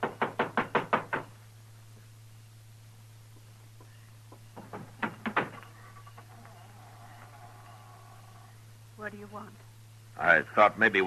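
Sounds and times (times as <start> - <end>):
knocking on a door: 0.0 - 1.3, 4.3 - 5.6.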